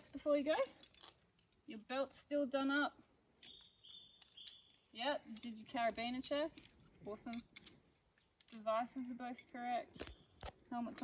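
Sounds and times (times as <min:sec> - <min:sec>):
faint high-pitched insect trill: 0:00.0 - 0:11.0.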